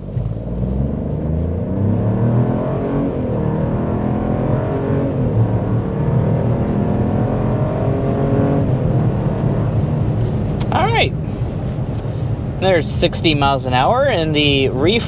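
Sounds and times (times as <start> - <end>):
car engine accelerating hard: 0.0 - 15.0.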